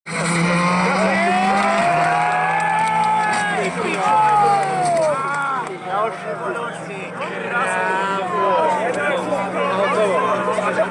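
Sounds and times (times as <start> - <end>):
car engine at high revs: 0.1 - 10.9.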